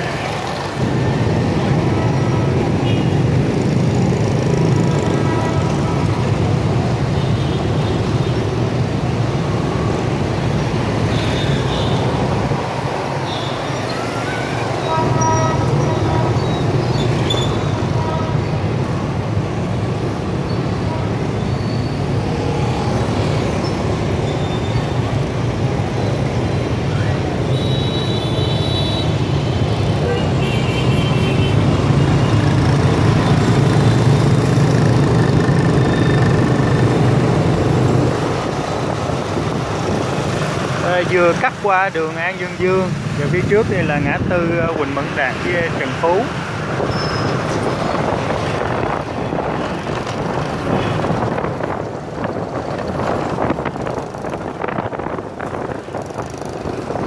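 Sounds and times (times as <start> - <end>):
cars and vans driving: 0.0 - 57.0
motorbike and scooter engines: 0.0 - 57.0.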